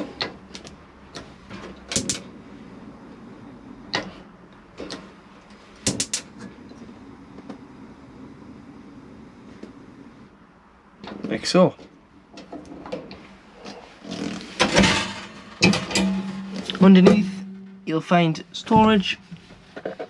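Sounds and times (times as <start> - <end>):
oven door and shelves clicking: 0.0 - 2.3, 14.5 - 17.6
faint steady hum: 0.0 - 20.0.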